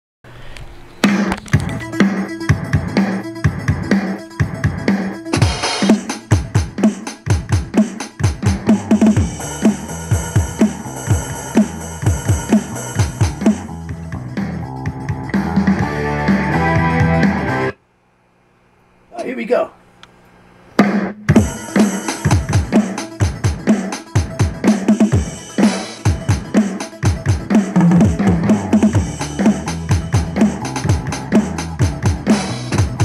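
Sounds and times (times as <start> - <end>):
rock drum kit playing: 1.0 - 17.7, 20.8 - 33.0.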